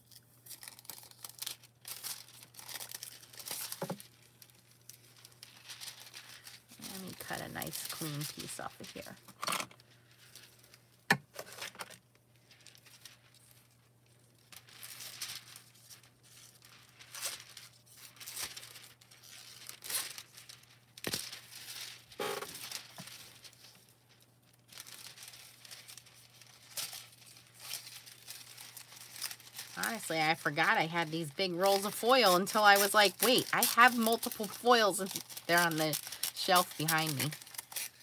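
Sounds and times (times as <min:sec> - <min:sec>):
metallic foil crinkling: 0:00.0 - 0:38.0
scissors cutting foil: 0:24.8 - 0:38.0.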